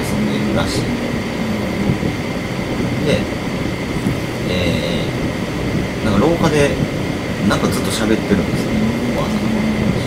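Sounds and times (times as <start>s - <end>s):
faint high tone: 0.0s - 2.4s
low rumbling background noise: 0.0s - 10.0s.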